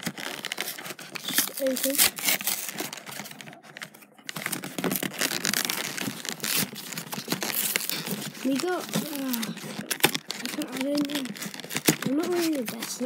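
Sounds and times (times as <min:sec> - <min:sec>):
packaging crinkling and tearing: 0:00.0 - 0:13.0.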